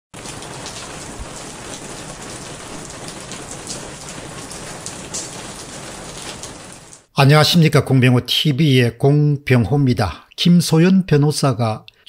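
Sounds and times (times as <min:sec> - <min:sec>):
louder raindrop strikes: 0:00.2 - 0:07.1
steady rain falling: 0:00.2 - 0:07.7.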